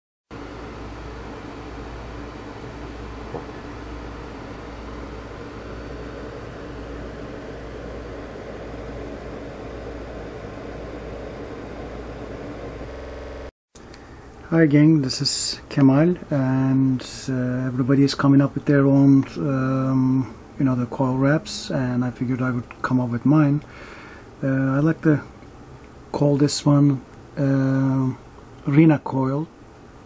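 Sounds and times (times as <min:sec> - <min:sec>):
background hum and hiss: 0:00.3 - 0:30.0.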